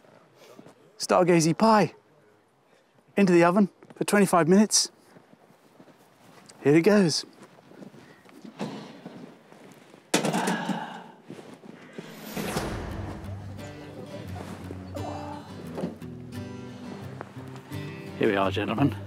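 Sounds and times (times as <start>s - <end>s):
background music held notes: 12.3s - 19.0s.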